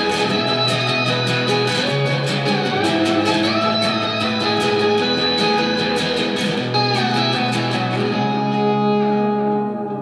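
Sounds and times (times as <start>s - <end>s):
acoustic guitar strumming: 0.0s - 10.0s
steel guitar sliding notes: 0.0s - 10.0s.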